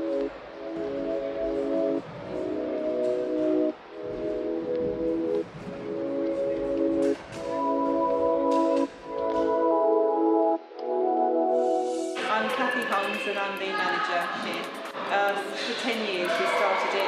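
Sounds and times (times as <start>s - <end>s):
sustained music chords: 0.0s - 12.2s.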